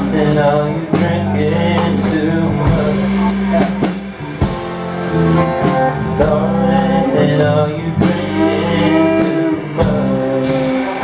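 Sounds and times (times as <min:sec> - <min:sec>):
guitar chords strummed: 0:00.0 - 0:11.0.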